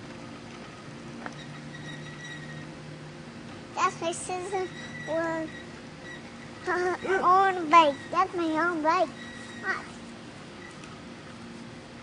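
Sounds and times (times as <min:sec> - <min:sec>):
girl's high-pitched vocal sound: 0:06.7 - 0:09.9.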